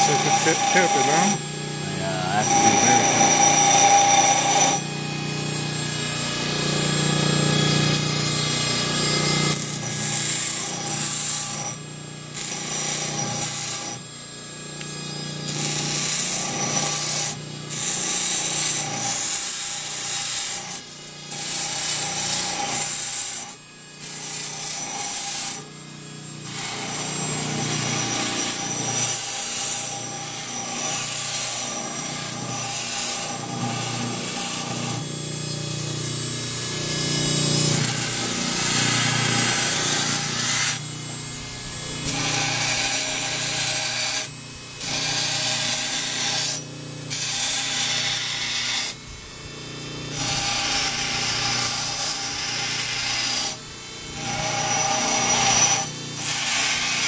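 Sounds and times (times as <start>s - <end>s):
high grinding of antler: 0.0s - 4.8s, 36.2s - 49.0s, 50.2s - 57.0s
grinding tool motor running: 0.0s - 57.0s.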